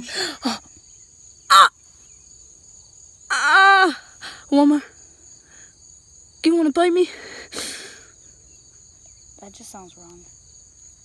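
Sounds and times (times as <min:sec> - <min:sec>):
person yelling in pain: 0:01.5 - 0:01.7, 0:03.3 - 0:04.2.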